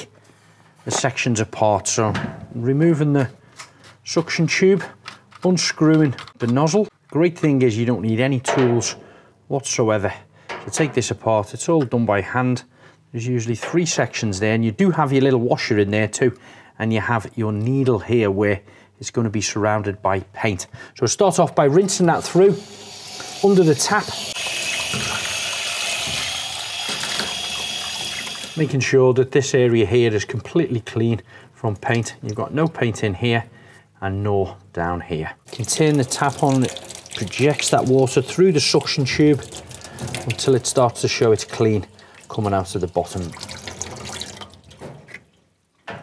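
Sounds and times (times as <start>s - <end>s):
water running from sink tap: 22.0s - 28.7s, 35.5s - 44.8s
water splashing into steel sink: 23.1s - 28.6s, 35.5s - 45.4s.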